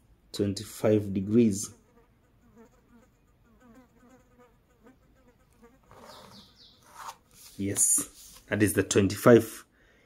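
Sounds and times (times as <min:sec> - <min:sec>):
pen scratching along a ruler: 0:05.8 - 0:07.5
soft chirps: 0:06.0 - 0:07.0.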